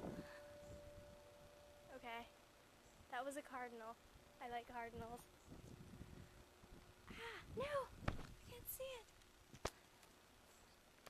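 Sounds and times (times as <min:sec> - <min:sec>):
faint background hiss: 0:00.0 - 0:11.0.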